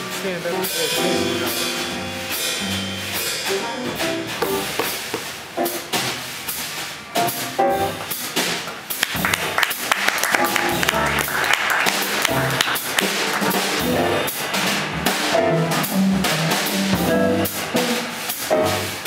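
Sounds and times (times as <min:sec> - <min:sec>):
double bass: 0:00.0 - 0:19.0
drum kit: 0:00.0 - 0:19.0
jazz band playing: 0:00.0 - 0:19.0.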